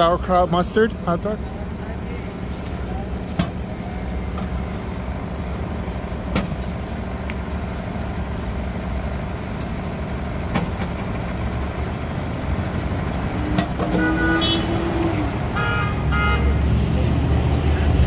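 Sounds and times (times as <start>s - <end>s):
city street traffic: 0.0s - 18.0s
car horn: 13.4s - 16.7s.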